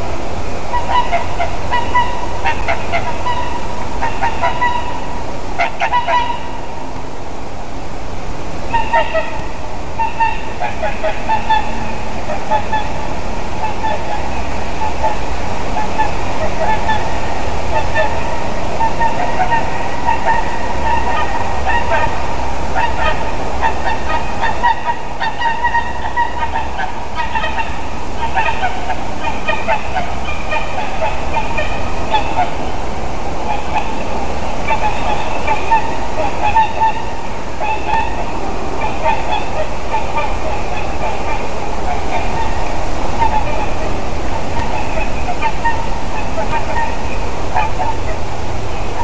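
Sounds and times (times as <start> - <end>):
swans honking: 0.7 - 6.9, 8.7 - 49.0.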